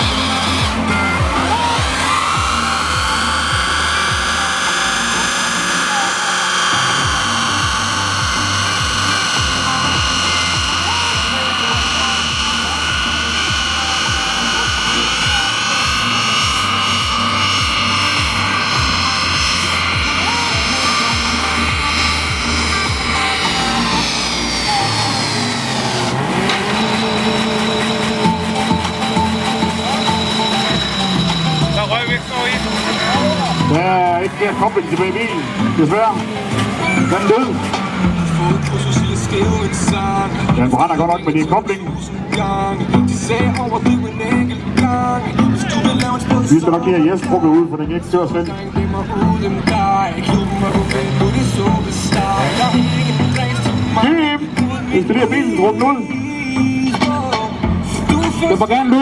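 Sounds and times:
car engine revving: 0.0 - 59.0
music with a beat: 0.0 - 59.0.

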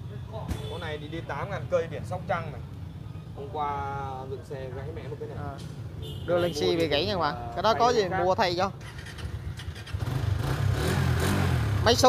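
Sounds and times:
motorcycle engine starting and idling: 8.8 - 12.0.

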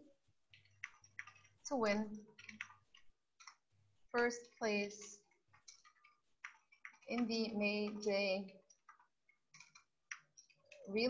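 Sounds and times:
keyboard typing clicks: 0.5 - 11.0.

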